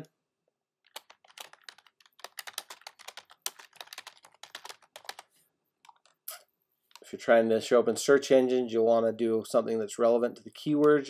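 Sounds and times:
computer keyboard typing: 0.8 - 6.2.

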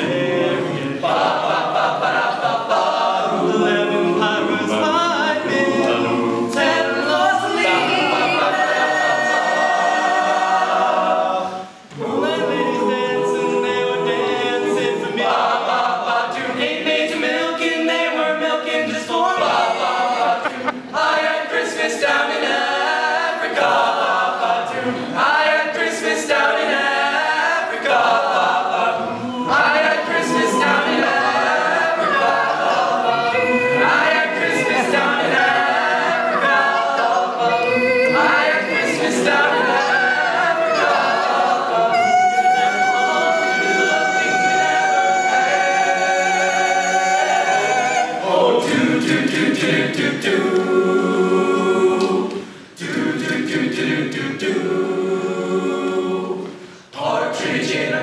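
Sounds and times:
male vocal group singing in harmony: 0.0 - 58.0.

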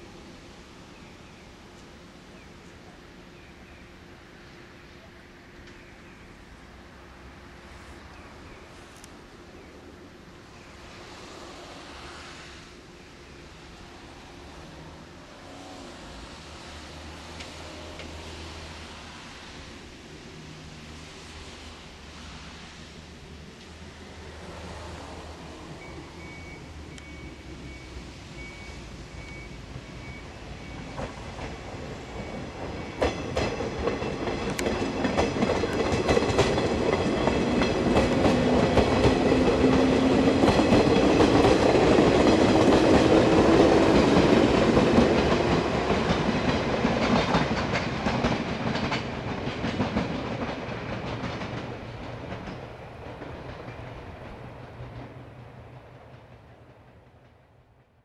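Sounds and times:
electric train whine: 0.0 - 58.0
wheels clicking over rail joints: 30.8 - 57.6.

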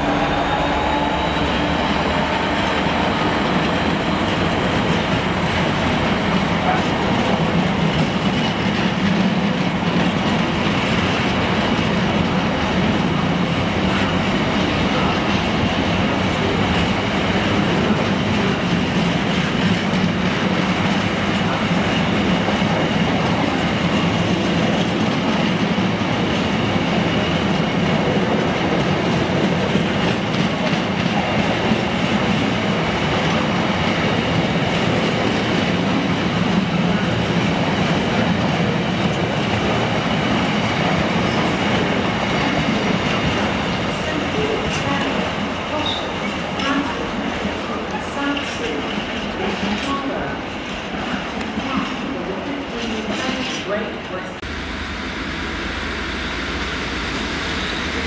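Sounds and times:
freight train wheels on track: 0.0 - 58.0.

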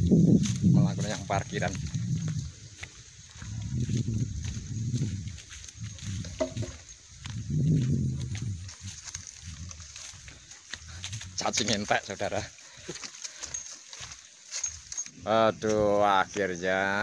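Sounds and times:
heavy breathing: 12.5 - 13.8.

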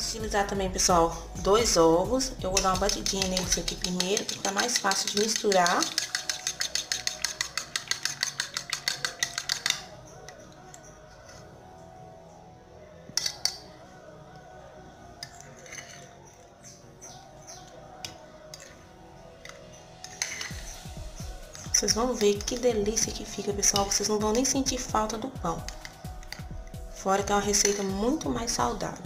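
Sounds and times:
soft background music: 0.0 - 29.0
utensil clinking against bowl: 2.5 - 10.8.

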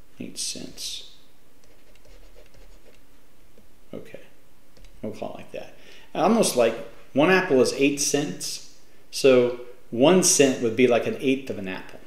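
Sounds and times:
stylus scratching on tablet: 1.6 - 3.1.

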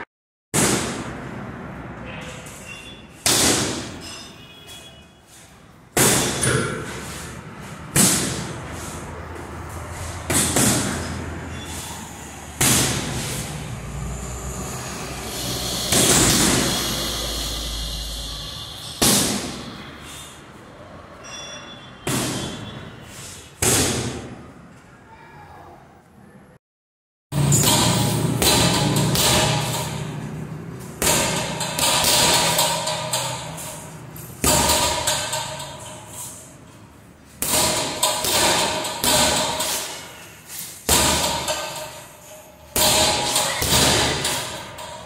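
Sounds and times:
punches hitting heavy bag: 6.0 - 7.0, 7.9 - 8.6, 10.3 - 11.1, 12.6 - 13.4, 30.8 - 33.8, 34.4 - 35.6, 37.4 - 40.1, 40.8 - 42.1, 42.8 - 44.8.

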